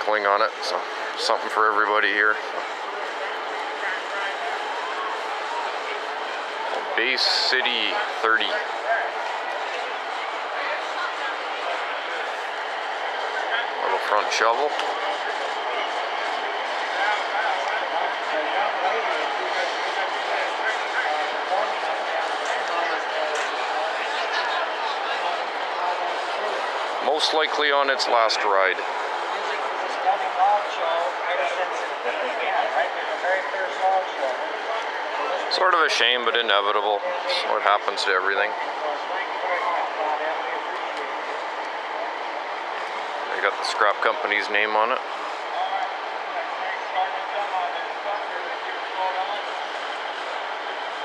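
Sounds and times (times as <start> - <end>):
faint indistinct voices: 0.0 - 51.0
overlapping chatter: 0.0 - 51.0.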